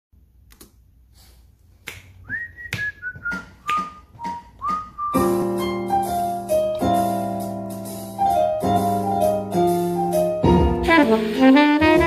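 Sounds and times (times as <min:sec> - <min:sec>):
finger snapping: 0:01.8 - 0:04.0
person whistling tune: 0:02.2 - 0:05.4.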